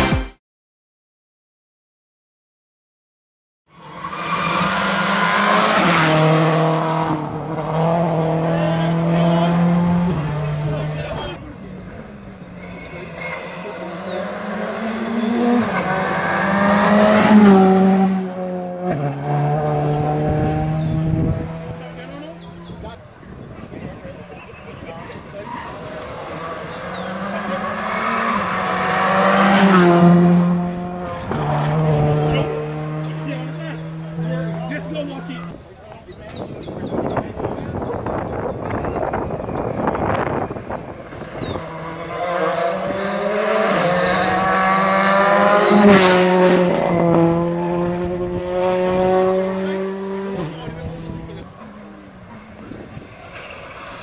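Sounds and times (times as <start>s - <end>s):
rally car engine at high revs: 4.3s - 22.8s, 25.2s - 35.5s, 37.8s - 54.0s.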